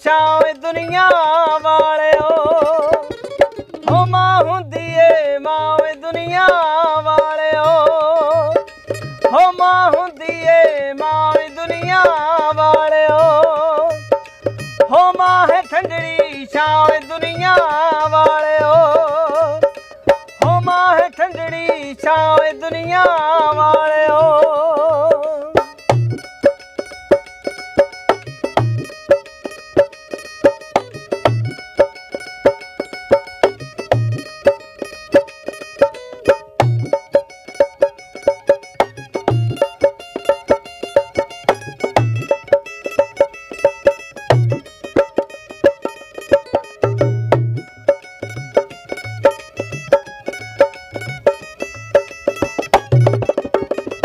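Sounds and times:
mandolin plucked melody: 0:00.0 - 0:54.0.

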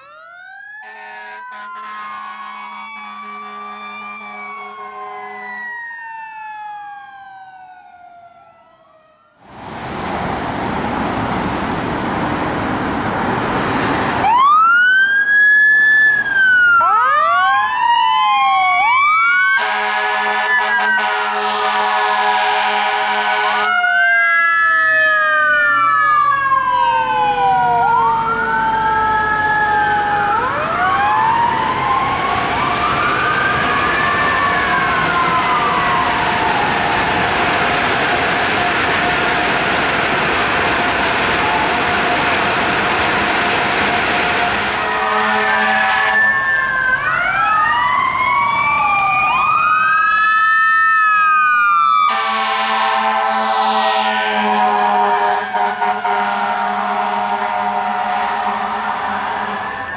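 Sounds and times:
fire engine siren wailing: 0:00.0 - 0:59.9
air horn blast: 0:00.8 - 0:05.6, 0:19.6 - 0:23.7, 0:44.6 - 0:46.4, 0:52.1 - 0:59.6
loud steady rushing noise: 0:34.6 - 0:45.0.

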